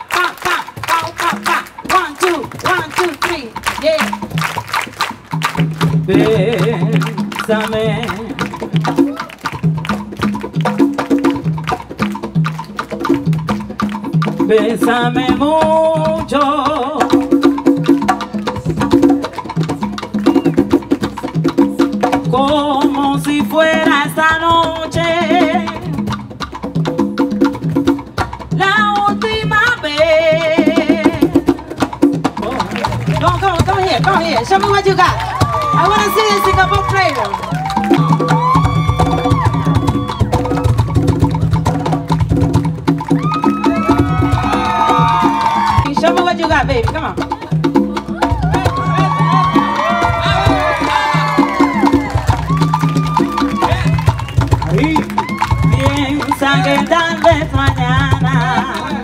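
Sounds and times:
hands clapping a rhythm: 0:00.0 - 0:15.0, 0:32.3 - 0:38.6, 0:48.7 - 0:59.0.

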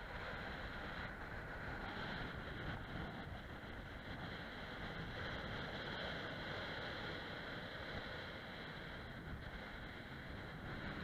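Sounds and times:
steady high-pitched hiss: 0:00.0 - 0:11.0
wind buffeting microphone: 0:00.0 - 0:11.0.

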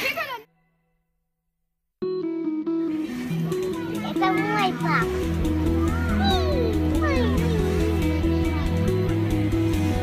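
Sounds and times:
background music with simple melody: 0:02.0 - 0:10.0
child's voice: 0:03.6 - 0:08.7.

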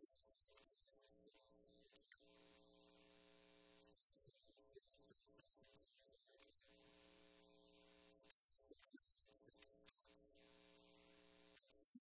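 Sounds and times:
faint steady hum: 0:00.0 - 0:05.8, 0:06.4 - 0:12.0.

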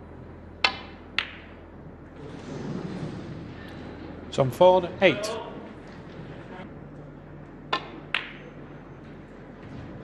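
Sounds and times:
low arena hum: 0:00.0 - 0:10.0
cue tip striking ball: 0:00.6 - 0:01.6, 0:07.7 - 0:08.5
snooker balls clicking together: 0:00.6 - 0:01.6, 0:07.7 - 0:08.5.

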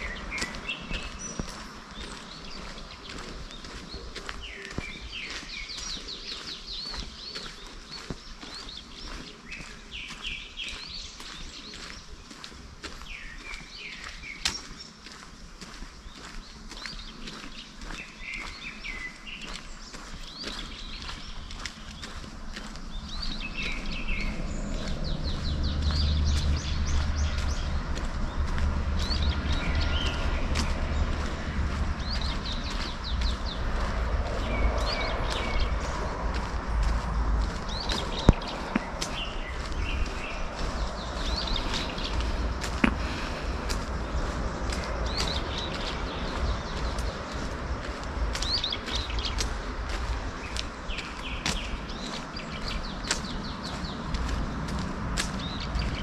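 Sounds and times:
footsteps on paved path: 0:00.0 - 0:56.0
songbirds trilling: 0:00.0 - 0:56.0
low rumble: 0:22.2 - 0:51.4.

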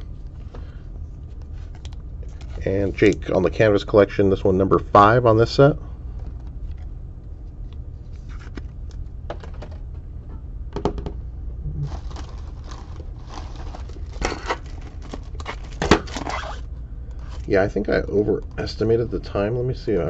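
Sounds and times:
steady low hum: 0:00.0 - 0:20.0
plastic wrappers crinkling: 0:11.9 - 0:16.6.

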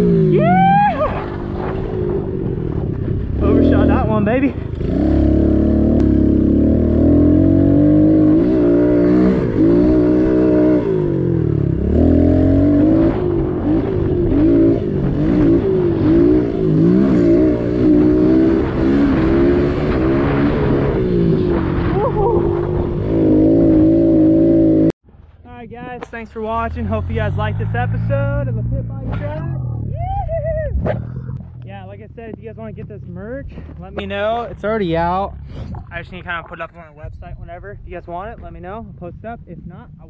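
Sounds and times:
pit bike engine revving: 0:00.0 - 0:25.0, 0:26.5 - 0:33.4.

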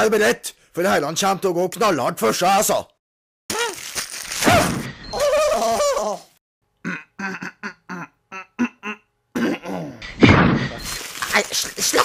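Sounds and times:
cartoon character cries: 0:03.5 - 0:03.8, 0:04.4 - 0:06.3
short grunts or yelps: 0:06.9 - 0:10.0.

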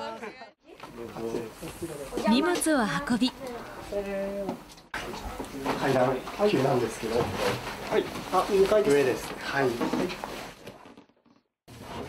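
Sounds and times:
people exchanging greetings: 0:01.7 - 0:04.3.

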